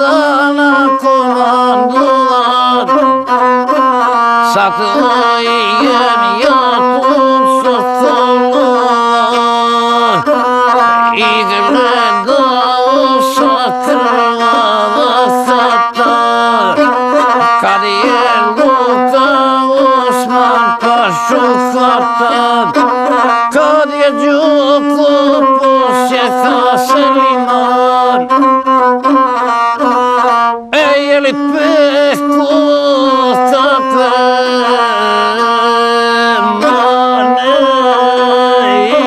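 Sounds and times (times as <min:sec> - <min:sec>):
bowed one-string fiddle: 0:00.0 - 0:39.0
man singing: 0:00.0 - 0:39.0.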